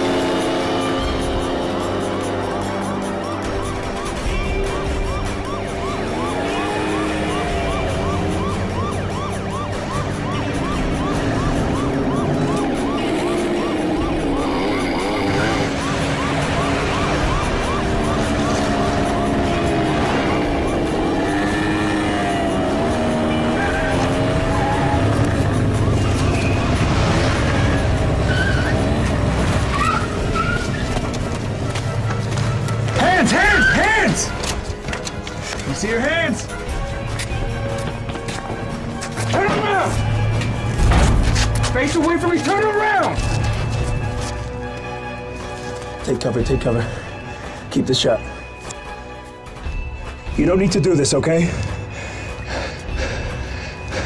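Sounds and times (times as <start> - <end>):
motor scooter engines: 0.0 - 47.7
action film music: 0.0 - 54.0.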